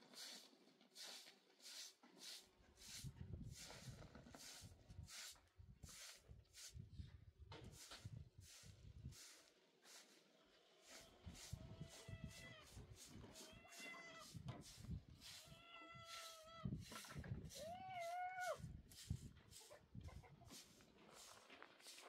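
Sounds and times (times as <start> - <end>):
cat meowing: 11.8 - 12.7, 13.3 - 14.3, 15.4 - 16.7
knocks and scrapes of hand work: 16.8 - 17.5.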